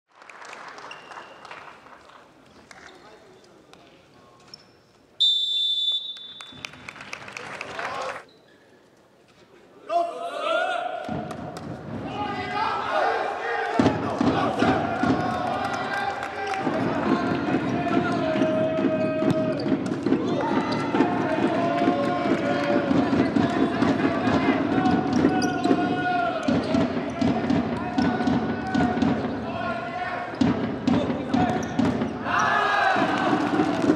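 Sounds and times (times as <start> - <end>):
referee whistle blast: 5.2 - 6.7
crowd applause: 6.6 - 8.3, 14.5 - 18.1, 32.8 - 33.9
players shouting: 12.0 - 33.9.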